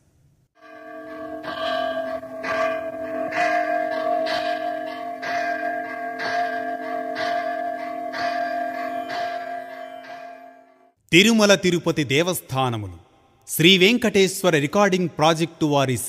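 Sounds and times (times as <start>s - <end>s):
bell ringing: 0.6s - 11.0s.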